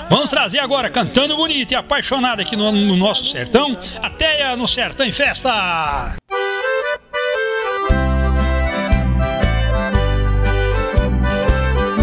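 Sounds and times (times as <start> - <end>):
accordion-led country music: 6.3 - 12.0
bass and steady beat: 7.6 - 12.0.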